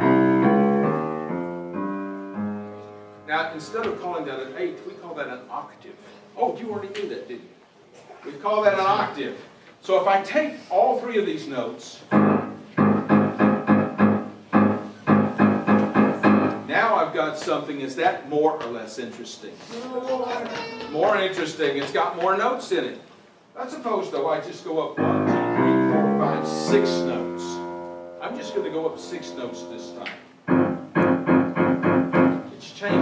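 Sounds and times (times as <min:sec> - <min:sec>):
grand piano notes in octaves: 0:00.0 - 0:07.4, 0:12.1 - 0:17.1, 0:24.9 - 0:33.0.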